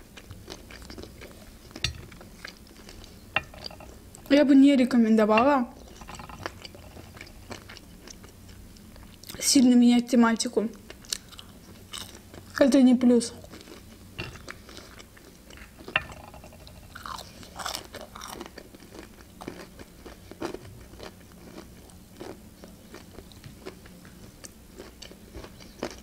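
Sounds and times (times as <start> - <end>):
close chewing with mouth clicks: 0.0 - 3.2, 10.9 - 12.6, 17.0 - 26.0.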